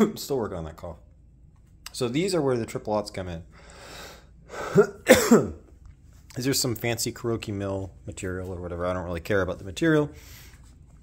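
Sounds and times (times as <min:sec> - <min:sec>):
man coughing: 0:04.5 - 0:05.7.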